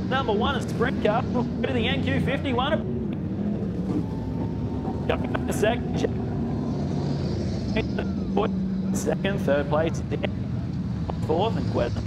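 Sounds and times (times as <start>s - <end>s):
race car engine at low revs: 0.0s - 12.0s.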